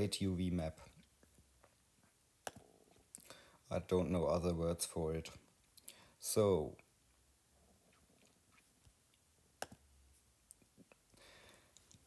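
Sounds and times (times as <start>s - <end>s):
taps on tablet screen: 9.6s - 9.8s.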